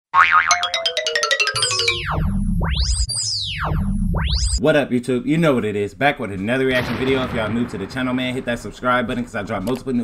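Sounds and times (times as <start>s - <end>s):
swooping pitch falls: 0.2s - 4.6s
wavering tone: 0.5s - 4.6s
low bass beat: 2.0s - 4.6s.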